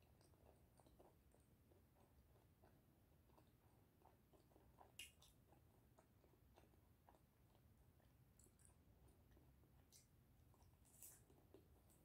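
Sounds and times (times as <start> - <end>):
faint wet chewing: 0.0 - 12.0.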